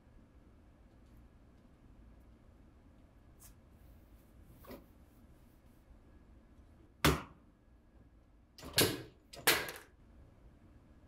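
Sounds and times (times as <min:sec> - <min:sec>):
sharp knocks on mannequin: 0:07.0 - 0:07.4.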